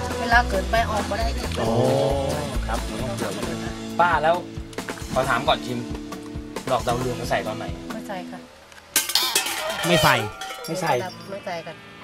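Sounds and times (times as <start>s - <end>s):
woman talking: 0.0s - 1.7s, 7.9s - 8.5s, 10.9s - 12.0s
utensils clattering against dishes: 9.0s - 11.4s.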